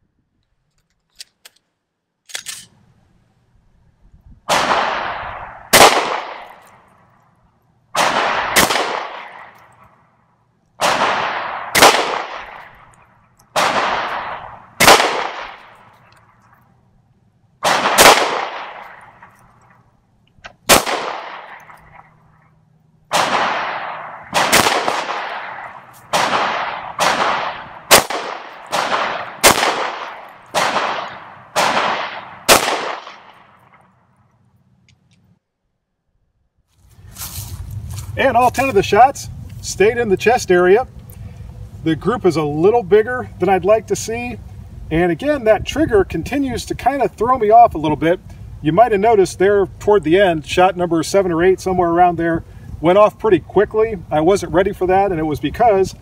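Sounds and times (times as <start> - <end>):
pistol shots echoing: 4.5 - 6.8, 8.0 - 9.9, 10.8 - 12.9, 13.5 - 15.9, 17.6 - 19.4, 20.7 - 22.2, 23.1 - 33.8.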